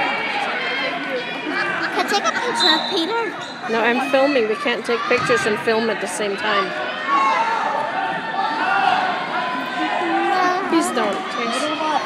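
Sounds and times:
crowd talking: 0:00.0 - 0:12.0.

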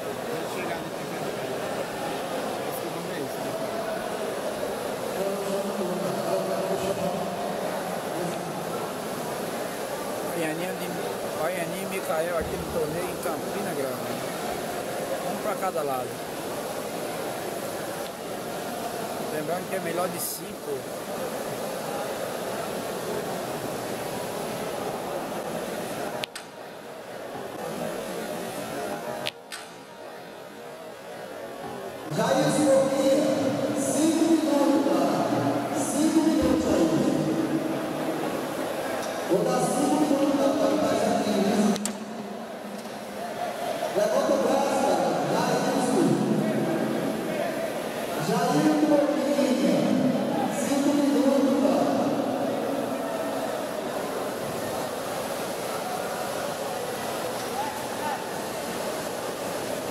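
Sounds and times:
crowd murmur: 0:00.0 - 0:59.9
onlookers chattering: 0:00.0 - 0:59.9.

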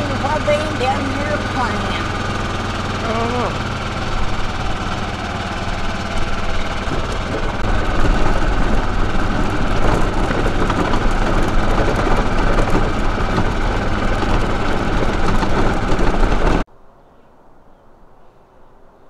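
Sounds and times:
truck engine running: 0:00.0 - 0:16.7.

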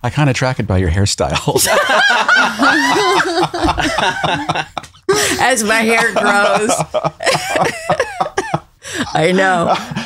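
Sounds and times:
people laughing: 0:01.5 - 0:10.0.

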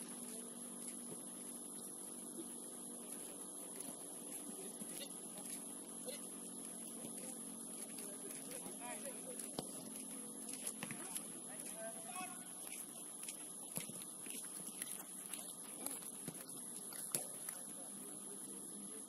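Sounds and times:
electrical hum with whine: 0:00.0 - 0:19.0
ball being kicked: 0:09.5 - 0:09.8, 0:10.7 - 0:11.2, 0:15.8 - 0:17.6.

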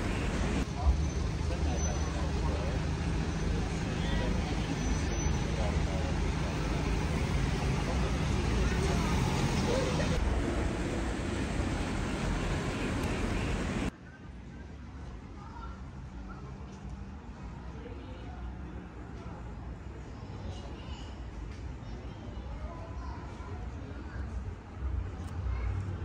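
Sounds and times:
cars driving past: 0:00.0 - 0:13.9
indistinct voices: 0:00.0 - 0:13.9.

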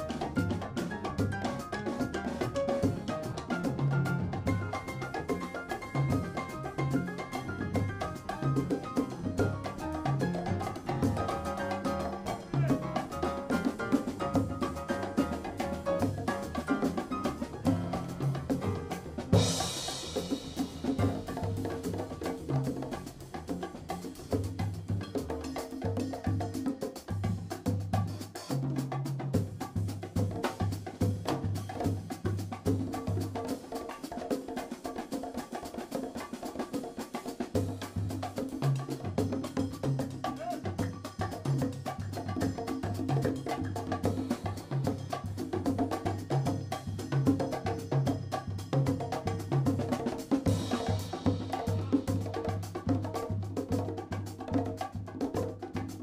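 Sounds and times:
hand drums and percussion: 0:00.0 - 0:56.0
small live band playing: 0:00.0 - 0:56.0
cymbal crash: 0:19.3 - 0:21.2.

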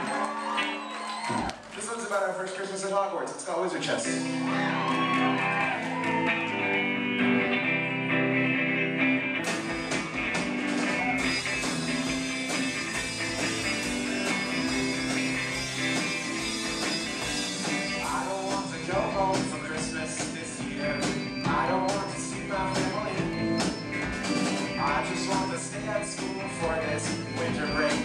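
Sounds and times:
keyboard: 0:00.0 - 0:28.0
electric guitar: 0:04.0 - 0:28.0
drums and cymbals: 0:09.4 - 0:28.0.

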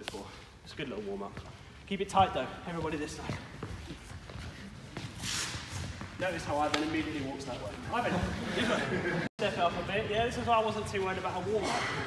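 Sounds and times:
footsteps on wooden floor: 0:01.2 - 0:07.9
shoe scuff: 0:02.9 - 0:07.2.

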